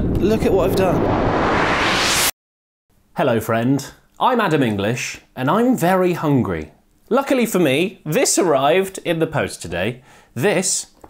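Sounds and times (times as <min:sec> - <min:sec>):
rising white-noise whoosh: 0:00.0 - 0:02.4.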